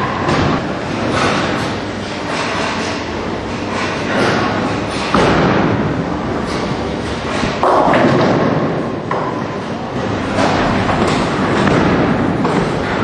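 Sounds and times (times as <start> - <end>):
bowling balls rolling: 3.0 - 13.0.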